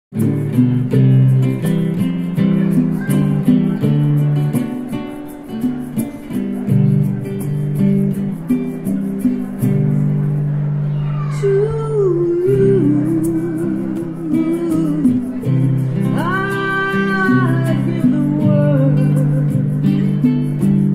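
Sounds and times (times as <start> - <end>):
acoustic guitar strumming chords: 0.1 - 20.9.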